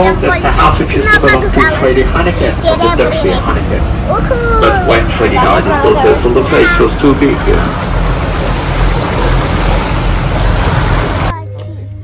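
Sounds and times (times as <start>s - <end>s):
rushing wake water: 0.0s - 11.3s
low engine rumble: 0.0s - 12.0s.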